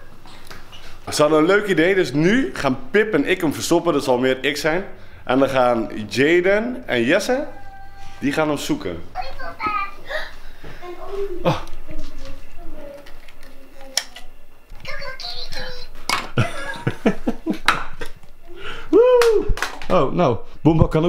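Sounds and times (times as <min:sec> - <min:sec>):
toddler babbling and exclaiming: 0:07.4 - 0:08.3, 0:09.2 - 0:11.5, 0:14.8 - 0:16.0.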